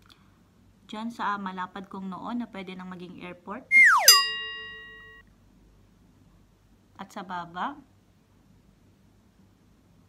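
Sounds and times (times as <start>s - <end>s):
downward-sliding whistle: 3.7s - 5.1s
bell-like ding: 3.8s - 5.2s.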